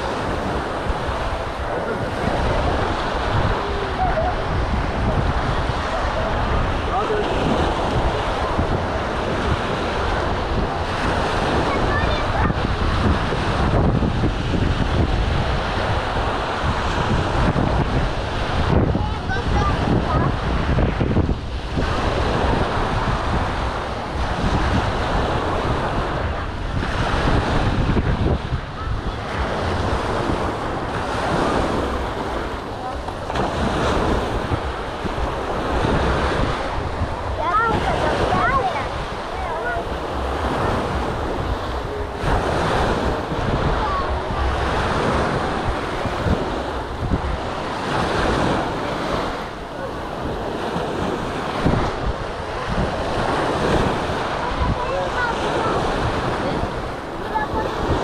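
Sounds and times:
scattered voices: 0:00.0 - 0:14.0, 0:25.3 - 0:58.0
small waves breaking on sand: 0:00.0 - 0:58.0
wind buffeting microphone: 0:00.0 - 0:58.0.

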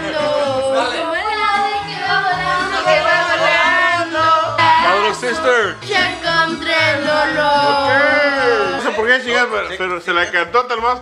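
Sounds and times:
latin music with singing: 0:00.0 - 0:11.0
steady bass line: 0:02.1 - 0:08.8.

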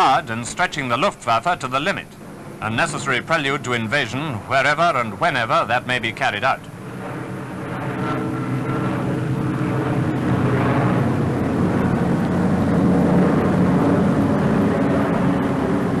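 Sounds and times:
propeller plane engines droning: 0:00.0 - 0:16.0.

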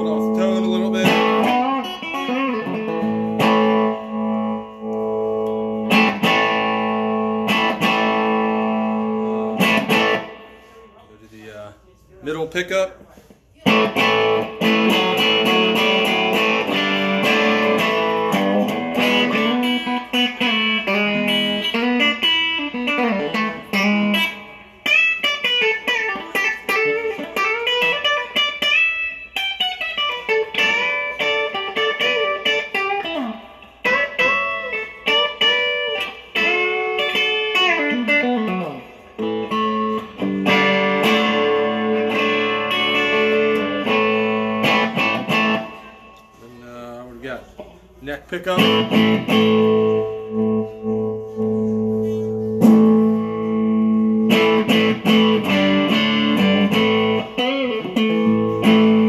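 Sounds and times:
electric guitar chords and bends: 0:00.0 - 0:11.0, 0:13.6 - 0:46.4, 0:48.5 - 0:59.0.

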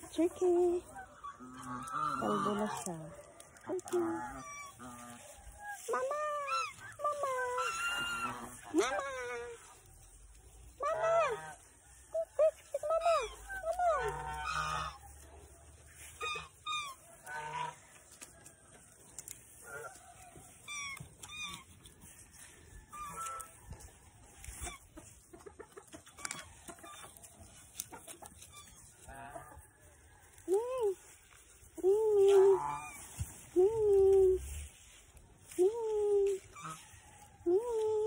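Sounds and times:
geese honking: 0:00.0 - 0:09.7, 0:10.7 - 0:17.9, 0:22.8 - 0:23.8, 0:24.4 - 0:29.8, 0:31.9 - 0:33.3, 0:36.5 - 0:38.0.

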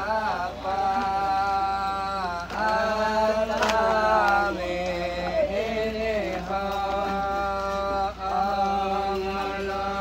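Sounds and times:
person chanting long notes: 0:00.0 - 0:10.0.

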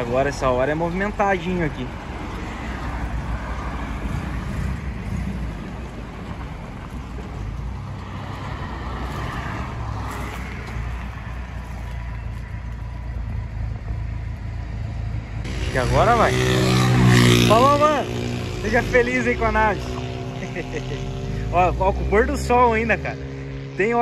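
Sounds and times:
car engine idling: 0:00.0 - 0:16.6
cars passing on road: 0:00.0 - 0:24.0.

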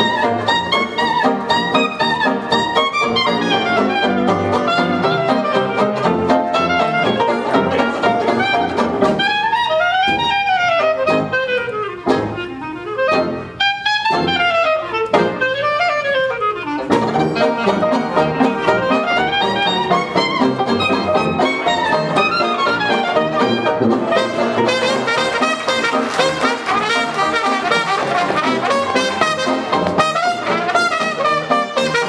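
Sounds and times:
jazz band playing live: 0:00.0 - 0:32.0
solo horn line: 0:00.0 - 0:32.0.

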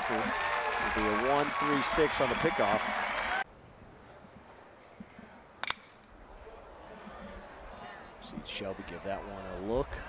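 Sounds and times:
faint crowd ambience: 0:00.0 - 0:10.0
metal bat hitting ball: 0:05.6 - 0:06.0.

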